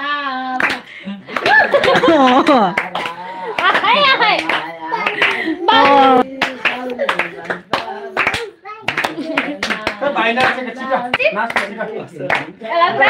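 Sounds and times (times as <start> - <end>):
people clapping: 0.5 - 13.0.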